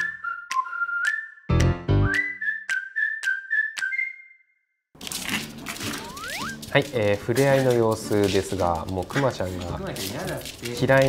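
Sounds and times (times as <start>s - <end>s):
whistled melody: 0.0s - 4.9s, 6.0s - 6.6s.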